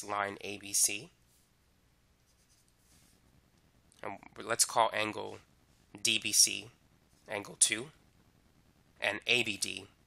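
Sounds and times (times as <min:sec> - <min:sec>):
stylus scratching on tablet: 0:02.2 - 0:03.3.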